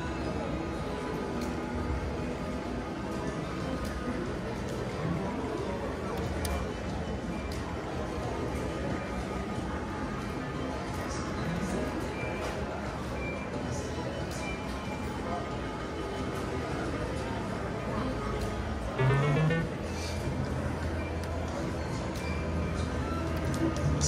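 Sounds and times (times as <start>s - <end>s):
murmur of voices: 0.0s - 24.0s
gliding electronic tones: 19.0s - 19.8s
background music: 19.0s - 20.0s.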